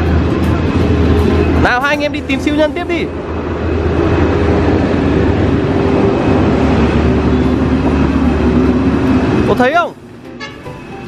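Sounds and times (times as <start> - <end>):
loud engine drone: 0.0 - 11.0.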